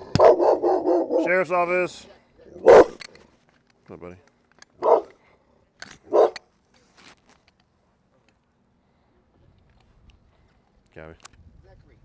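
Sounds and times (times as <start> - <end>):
dog barking: 0.1 - 1.4, 2.6 - 3.0, 4.8 - 5.2, 6.1 - 6.4.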